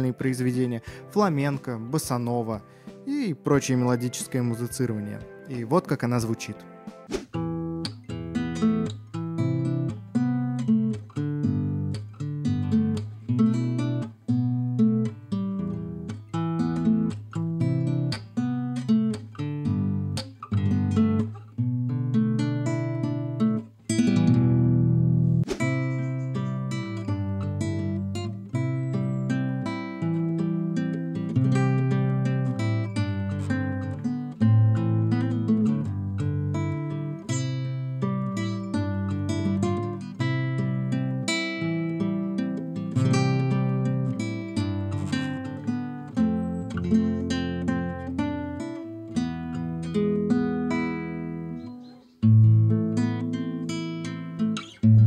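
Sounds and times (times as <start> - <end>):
fingerstyle classical guitar: 6.4 - 55.0.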